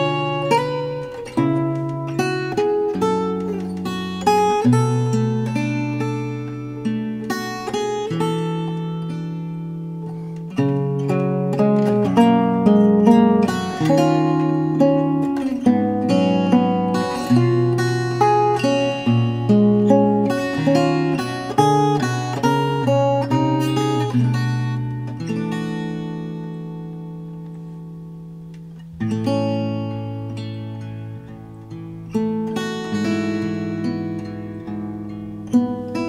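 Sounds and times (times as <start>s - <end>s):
fingerstyle acoustic guitar ballad: 0.0s - 36.0s.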